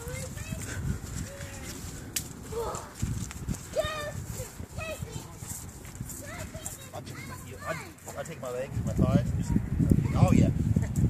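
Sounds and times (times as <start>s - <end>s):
horse hooves on muddy ground: 0.0s - 8.6s.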